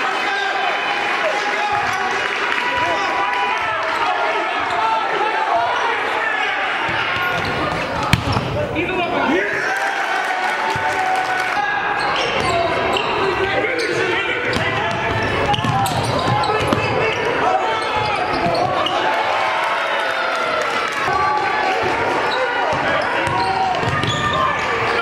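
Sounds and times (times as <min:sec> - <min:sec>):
players and spectators shouting: 0:00.0 - 0:25.0.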